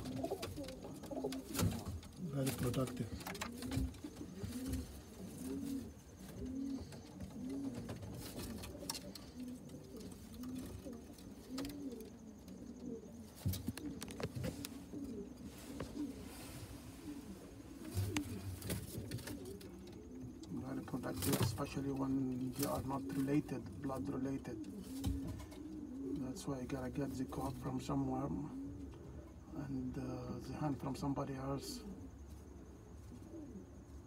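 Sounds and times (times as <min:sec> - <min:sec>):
pigeons cooing: 0:00.0 - 0:34.0.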